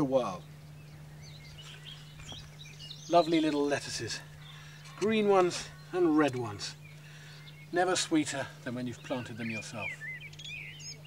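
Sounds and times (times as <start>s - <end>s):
small birds chirping: 0.0s - 11.0s
steady low hum: 0.0s - 11.0s.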